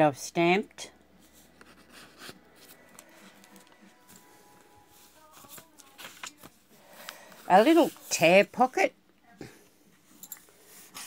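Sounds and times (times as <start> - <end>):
pages of paper turning: 4.9 - 8.1.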